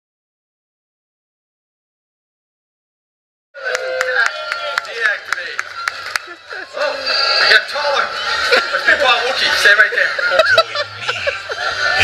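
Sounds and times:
voices over sound system: 0:03.6 - 0:12.0
music over sound system: 0:04.2 - 0:12.0.

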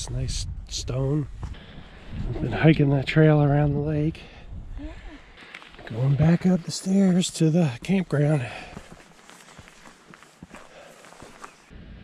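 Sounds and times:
footsteps on leafy dirt trail: 0:05.4 - 0:11.7.

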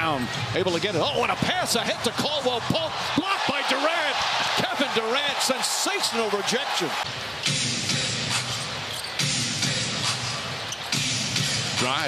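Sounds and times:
crowd noise: 0:00.0 - 0:12.0
music over arena pa: 0:07.0 - 0:12.0.

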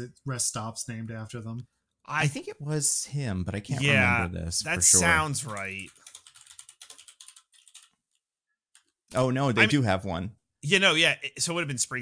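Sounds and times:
rapid computer keyboard typing: 0:05.2 - 0:08.1.

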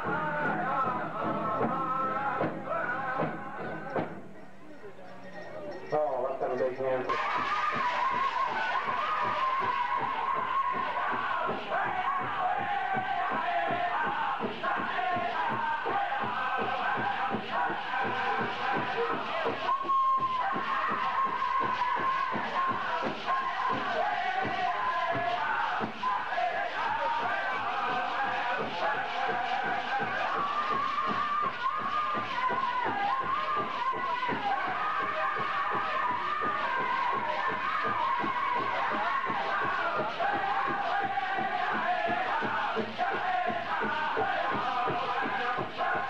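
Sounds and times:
group singing high held vocal: 0:00.0 - 0:04.2, 0:07.1 - 0:46.0
steady drumbeat: 0:00.0 - 0:04.4, 0:07.1 - 0:46.0.

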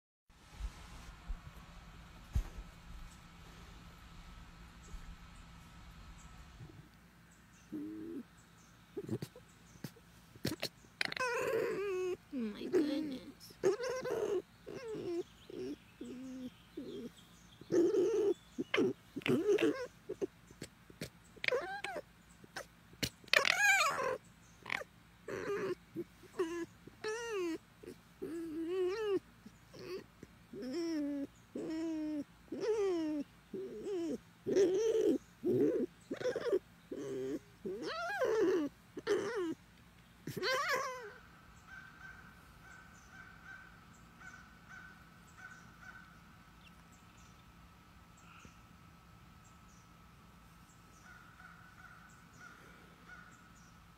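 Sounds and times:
fox whining and chattering: 0:07.6 - 0:48.5.

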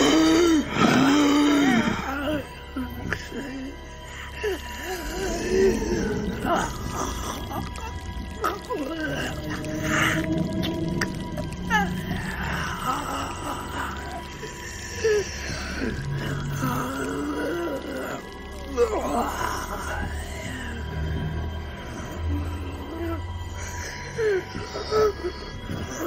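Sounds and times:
creature moaning and wailing: 0:00.0 - 0:26.0
low droning music: 0:00.0 - 0:26.0.

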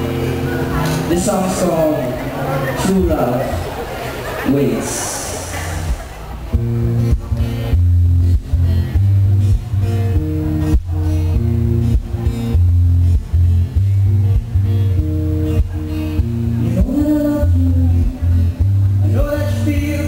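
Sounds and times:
amplified guitar strumming chords: 0:00.0 - 0:20.0.

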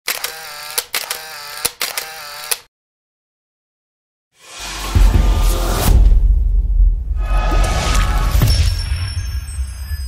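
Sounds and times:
sharp mechanical clicks: 0:00.1 - 0:02.7.

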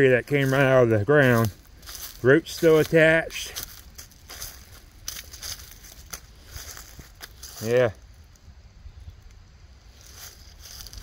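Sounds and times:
footsteps crunching dry leaves: 0:00.0 - 0:08.2, 0:09.9 - 0:11.0.

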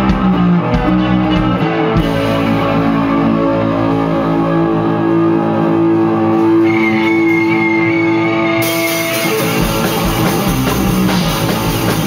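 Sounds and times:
electric guitars playing chords: 0:00.0 - 0:12.0
high lead guitar note: 0:00.0 - 0:12.0.

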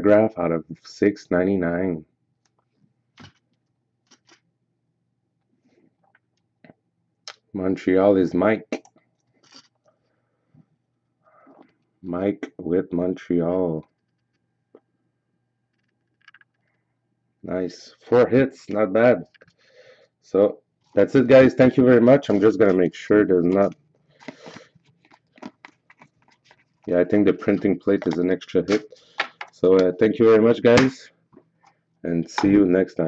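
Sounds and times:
faint card rustle: 0:22.2 - 0:29.6.

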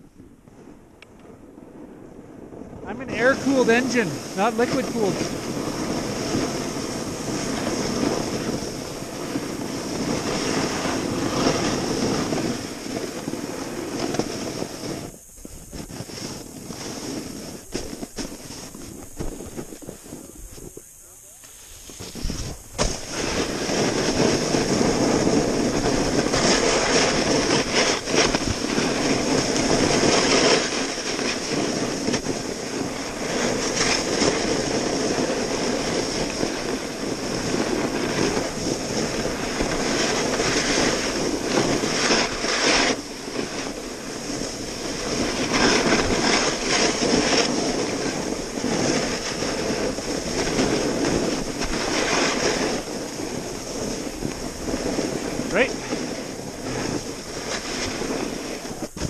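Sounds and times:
snowboard scraping over snow: 0:00.0 - 0:59.0
wind on microphone: 0:00.0 - 0:59.0.

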